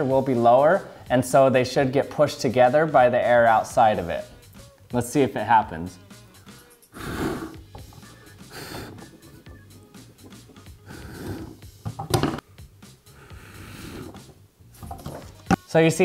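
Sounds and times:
person blowing air puffs: 6.5 - 11.8, 12.6 - 14.4.

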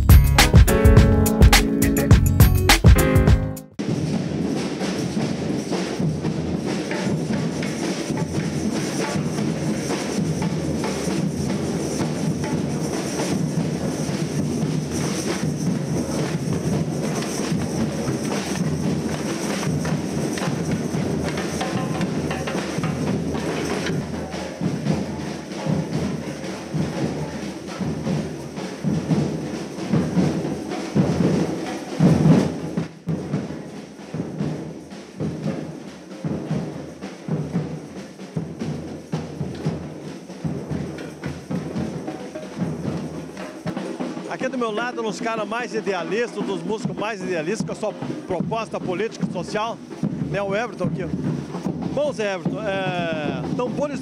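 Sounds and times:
tambourines: 0.0 - 3.4, 4.1 - 54.0
bass drums struck with mallets: 0.0 - 3.6
snare drums: 0.0 - 54.0.

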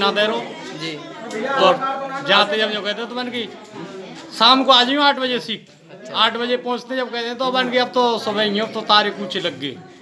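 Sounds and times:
man talking: 0.0 - 3.5, 4.3 - 9.9
voices chattering: 0.0 - 10.0.

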